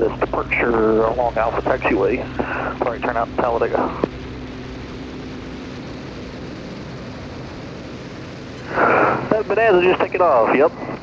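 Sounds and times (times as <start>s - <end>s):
propeller plane engine drone: 0.0s - 11.0s.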